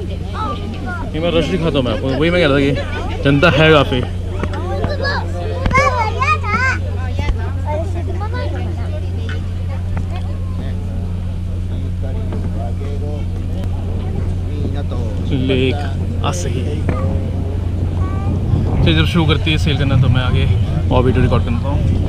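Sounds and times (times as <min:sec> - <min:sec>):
passengers chattering: 0:00.0 - 0:22.0
ship engine humming: 0:00.0 - 0:22.0.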